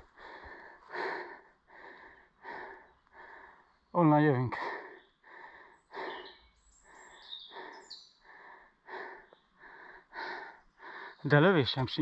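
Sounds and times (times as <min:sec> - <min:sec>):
person breathing hard: 0:00.0 - 0:03.8, 0:04.6 - 0:11.2.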